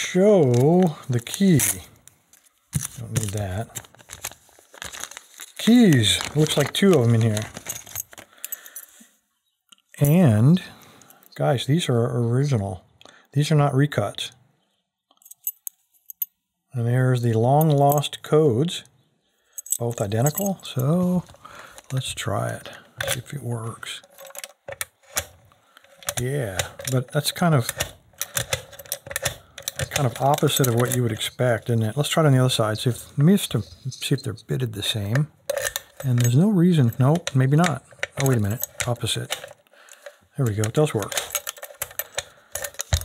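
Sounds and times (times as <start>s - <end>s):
keys clinking on a ring: 5.4s - 9.0s, 15.2s - 16.3s, 19.6s - 22.0s, 24.0s - 31.3s, 35.4s - 43.0s
key clicking in a lock: 27.6s - 31.0s.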